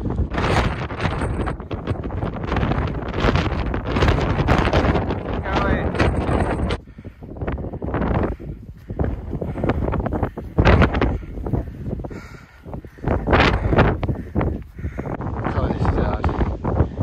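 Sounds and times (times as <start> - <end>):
gusting wind buffeting microphone: 0.0 - 17.0.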